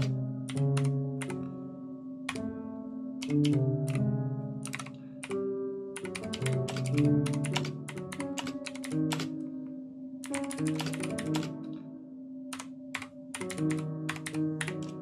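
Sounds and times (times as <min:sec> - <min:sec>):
computer keyboard key clicks: 0:04.6 - 0:05.0, 0:06.0 - 0:09.3, 0:10.2 - 0:11.6, 0:12.5 - 0:15.0.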